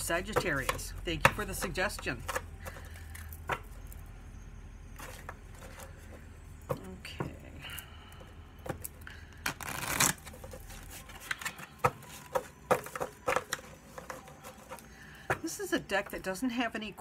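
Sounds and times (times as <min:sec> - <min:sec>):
cards riffle shuffling: 0:09.4 - 0:14.9.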